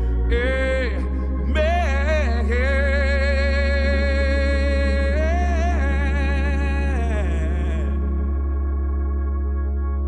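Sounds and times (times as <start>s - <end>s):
gospel singing long held note: 0.0s - 9.4s
steady low bass: 0.0s - 10.0s.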